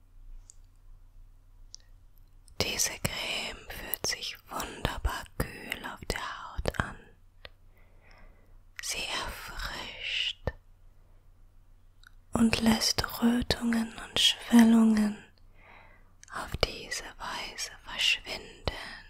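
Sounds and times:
woman whispering softly: 2.5 - 7.2, 8.7 - 10.6, 12.1 - 15.4, 16.2 - 19.0.

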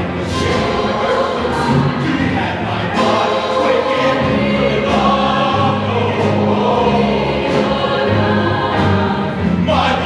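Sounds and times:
choir singing in harmony: 0.0 - 10.0.

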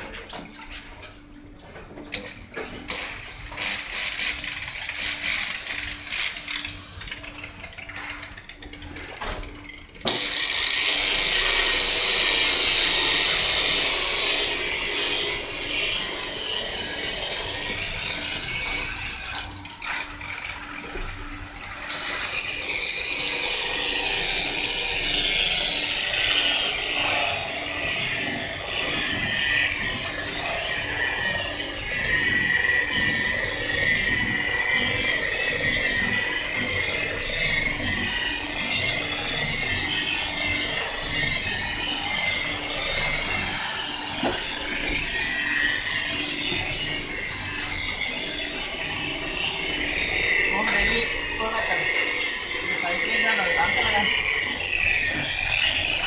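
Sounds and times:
electric polisher whining: 2.6 - 9.4, 10.0 - 56.0
polisher pad splashing water: 43.0 - 56.0.

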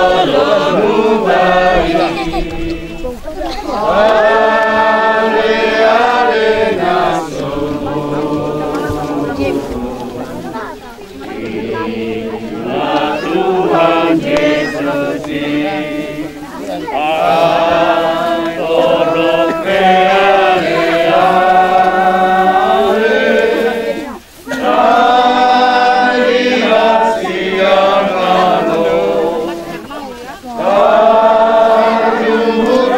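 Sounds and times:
group singing a hymn: 0.0 - 32.9.

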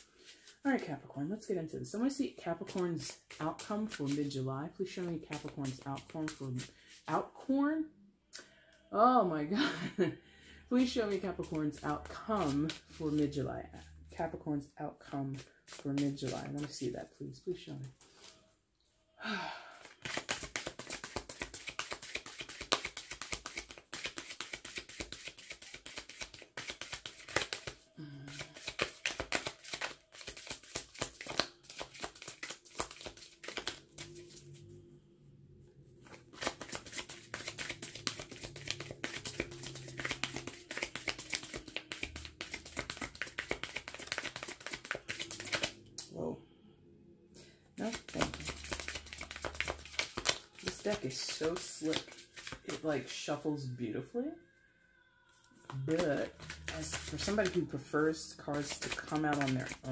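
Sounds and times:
cards being shuffled: 2.6 - 4.3, 5.0 - 7.0, 10.8 - 13.3, 15.3 - 16.9, 19.8 - 34.6, 36.0 - 45.8, 47.8 - 52.9, 55.6 - 59.9.

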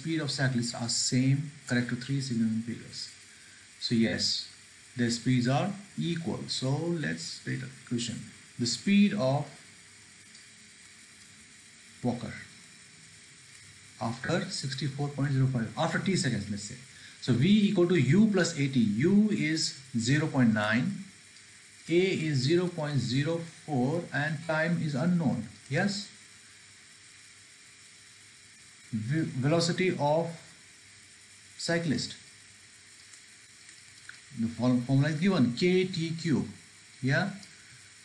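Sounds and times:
faint steady hiss: 0.0 - 38.0.

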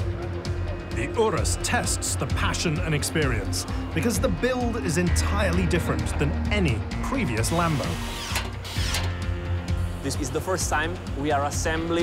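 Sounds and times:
background music: 0.0 - 12.0
cordless power tool driving a fastener: 7.8 - 9.2.

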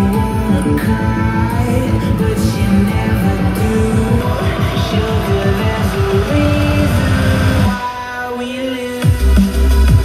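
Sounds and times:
music with guitar and heavy bass: 0.0 - 10.0.

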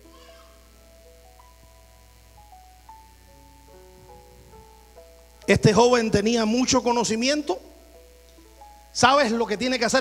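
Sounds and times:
soft keyboard pad chords: 0.0 - 10.0.

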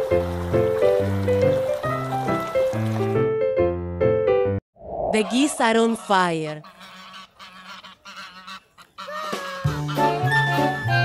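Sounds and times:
geese honking faintly: 5.2 - 11.0.

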